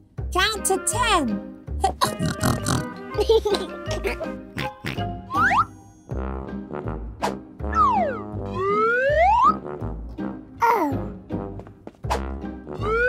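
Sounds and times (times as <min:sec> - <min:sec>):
playful children's music: 0:00.0 - 0:13.0
sliding pitch effects: 0:07.7 - 0:09.6.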